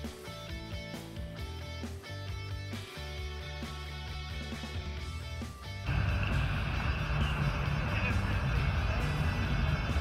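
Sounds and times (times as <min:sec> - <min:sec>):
tyres running past: 0:05.9 - 0:10.0
vehicle engines: 0:05.9 - 0:10.0.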